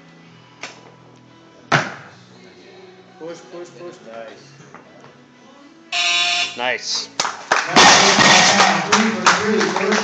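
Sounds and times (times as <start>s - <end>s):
clapping and cheering: 7.2s - 10.0s.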